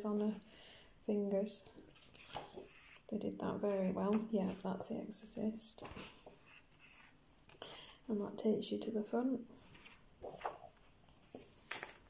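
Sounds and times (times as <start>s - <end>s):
book page turning: 1.9s - 3.1s, 9.6s - 12.0s.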